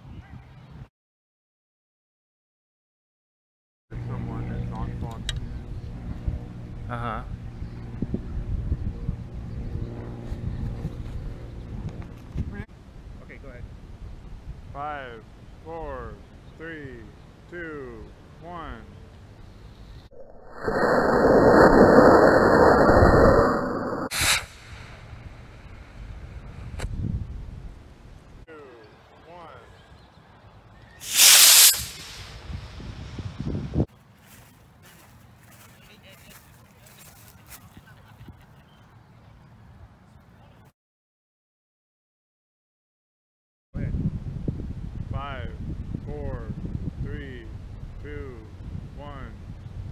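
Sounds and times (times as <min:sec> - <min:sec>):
wind buffeting microphone: 0:07.4 - 0:12.6, 0:20.2 - 0:27.9, 0:31.8 - 0:33.9, 0:43.8 - 0:49.9
rocket motor rushing hiss: 0:20.2 - 0:25.3, 0:31.0 - 0:33.0.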